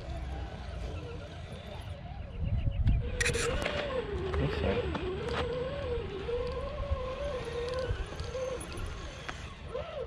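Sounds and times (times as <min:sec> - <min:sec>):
electric motor and gears whining: 0:00.0 - 0:10.0
low wind rumble: 0:00.0 - 0:10.0.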